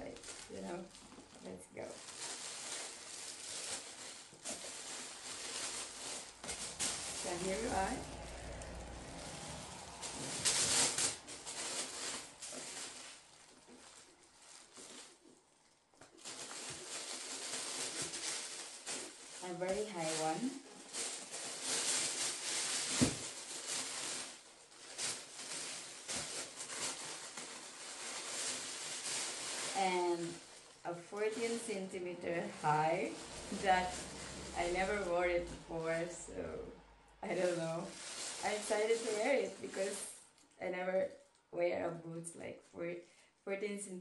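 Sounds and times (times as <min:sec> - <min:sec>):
tissue paper rustling and crinkling: 0:00.0 - 0:41.3.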